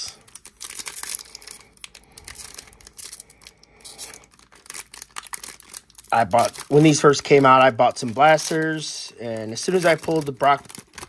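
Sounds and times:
wrapper tearing and crinkling: 0:00.0 - 0:11.0.

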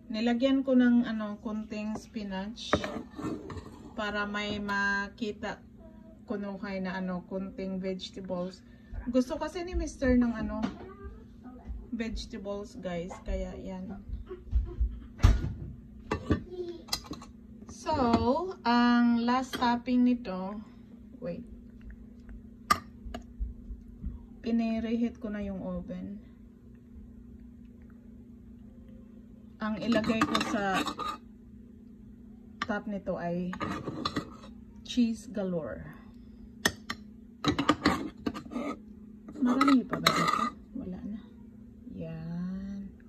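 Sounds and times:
wooden spoon scraping a pan: 0:02.6 - 0:04.1, 0:30.0 - 0:31.2, 0:33.5 - 0:34.6, 0:37.5 - 0:38.8
kitchenware knocking and clattering: 0:37.5 - 0:38.6.

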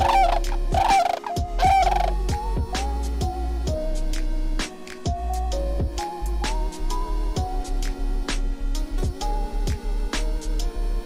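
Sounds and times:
cranes calling: 0:00.0 - 0:02.3
background music with soft beat: 0:00.0 - 0:11.0.

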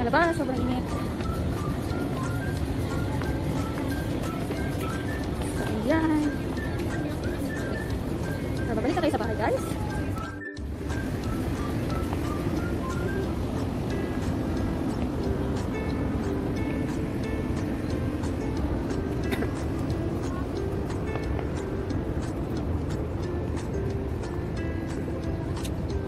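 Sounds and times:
background music of melodic notes: 0:00.0 - 0:26.0.

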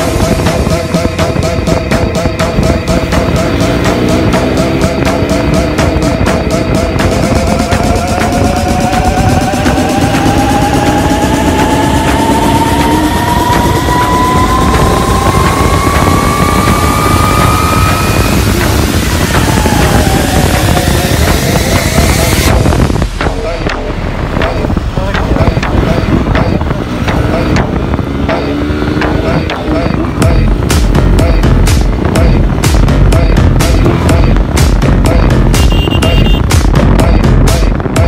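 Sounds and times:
motorcycle engine accelerating: 0:00.0 - 0:38.0
wind rush on microphone: 0:00.0 - 0:38.0.

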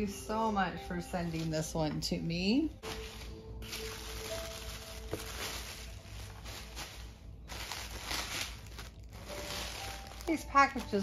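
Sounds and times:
tissue paper rustling and crinkling: 0:00.3 - 0:11.0.

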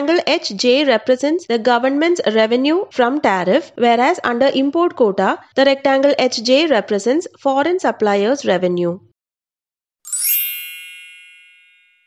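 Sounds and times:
bell-like ding: 0:10.1 - 0:12.0.

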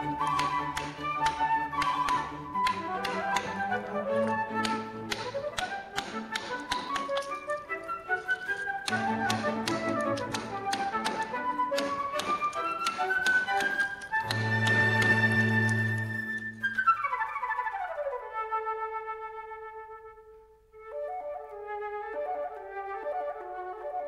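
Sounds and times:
mallet tapping carving gouge: 0:00.0 - 0:16.5
flute melody music: 0:00.0 - 0:24.0.

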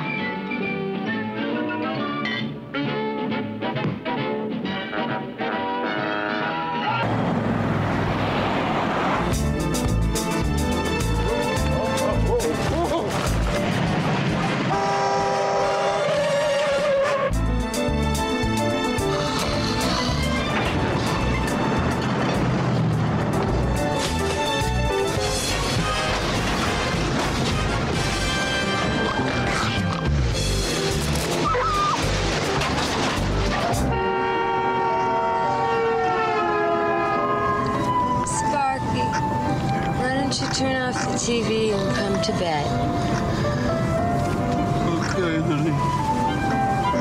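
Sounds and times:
film music: 0:00.0 - 0:47.0
loud multi-tone horn blast: 0:04.8 - 0:07.0, 0:14.4 - 0:17.4, 0:27.4 - 0:30.3, 0:33.6 - 0:38.2
street and traffic noise: 0:06.0 - 0:17.2, 0:18.2 - 0:47.0
car horn long blast: 0:14.7 - 0:16.6, 0:33.9 - 0:37.8.

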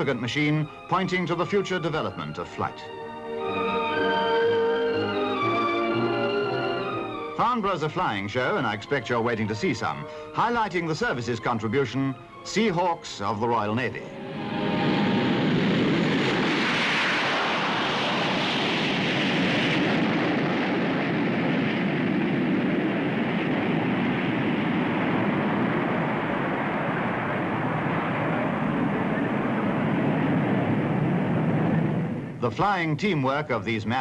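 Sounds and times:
jet engines roaring: 0:00.0 - 0:32.6.

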